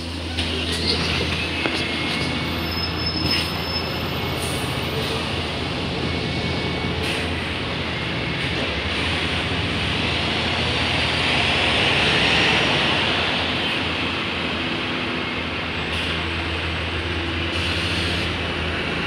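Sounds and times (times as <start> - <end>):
diesel buses idling: 0.0 - 19.0.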